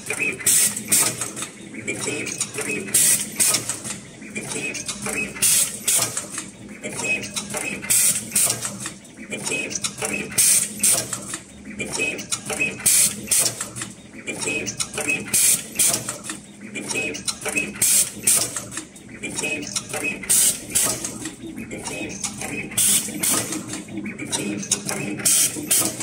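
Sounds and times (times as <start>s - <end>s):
wire processing machine clattering: 0.0s - 26.0s.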